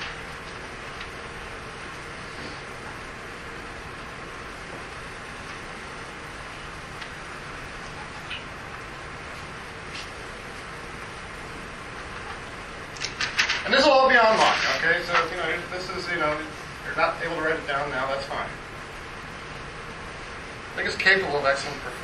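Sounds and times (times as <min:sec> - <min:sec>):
room tone hiss: 0:00.0 - 0:22.0.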